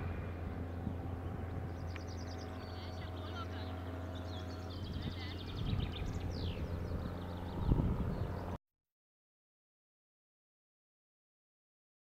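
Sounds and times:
birds chirping: 0.0s - 8.6s
distant light aircraft drone: 0.0s - 8.6s
wind buffeting microphone: 0.0s - 8.6s.

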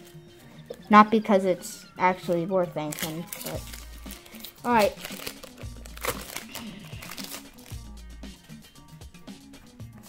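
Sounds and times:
background music with bass: 0.0s - 10.0s
foil wrapper crinkling: 2.9s - 7.8s.

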